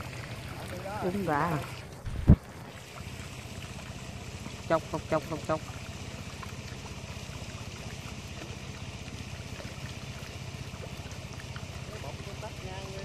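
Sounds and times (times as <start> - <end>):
small engine running: 0.0 - 13.0.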